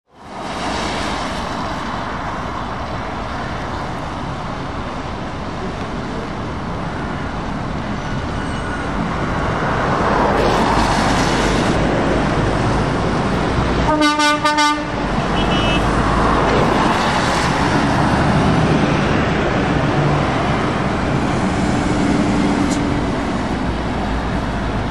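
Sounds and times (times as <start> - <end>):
heavy trucks passing on wet road: 0.1 - 24.9.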